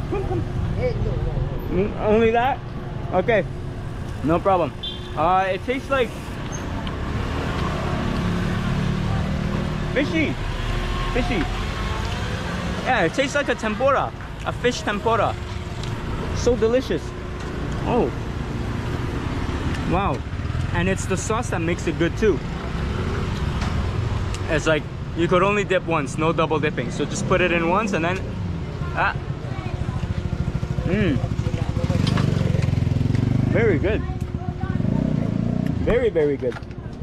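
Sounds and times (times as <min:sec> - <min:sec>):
low traffic rumble: 0:00.0 - 0:37.0
outdoor street noise: 0:00.0 - 0:37.0
motorcycle engine running: 0:28.5 - 0:36.1.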